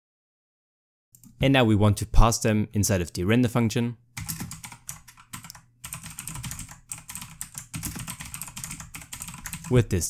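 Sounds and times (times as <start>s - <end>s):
typing on computer keyboard: 4.2s - 9.8s.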